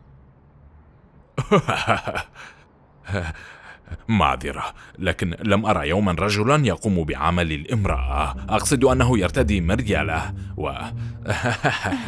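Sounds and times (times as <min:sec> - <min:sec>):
people talking: 0:03.1 - 0:12.0.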